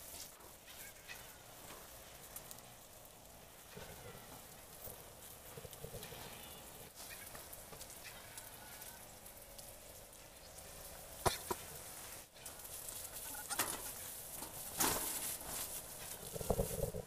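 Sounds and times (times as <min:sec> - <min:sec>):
dry grass rustling and crackling: 0:00.0 - 0:17.0.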